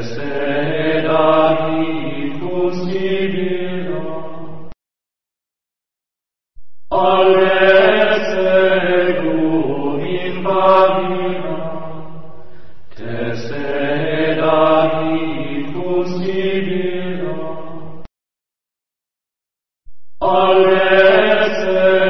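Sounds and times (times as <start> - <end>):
voice chanting in long held notes: 0.0 - 4.8, 6.9 - 18.1, 20.2 - 22.0.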